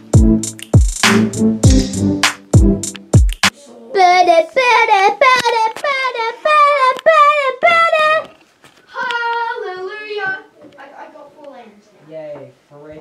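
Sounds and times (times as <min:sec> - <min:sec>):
child singing high notes: 0:03.9 - 0:09.8.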